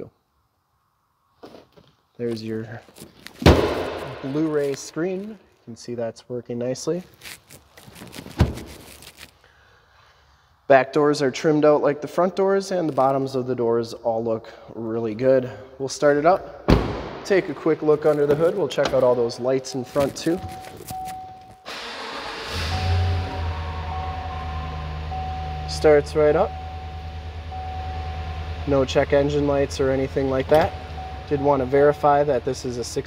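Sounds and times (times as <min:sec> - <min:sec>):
dull thump: 0:03.4 - 0:04.5, 0:16.7 - 0:17.4
car engine cranking and idling: 0:17.8 - 0:33.0
dashboard chime tone: 0:19.8 - 0:21.7, 0:22.8 - 0:28.5.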